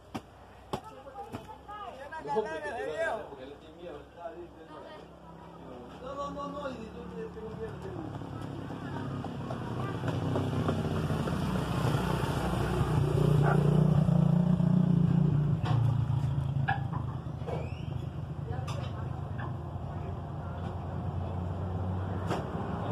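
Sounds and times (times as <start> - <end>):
vehicle engine passing by: 5.2 - 22.9.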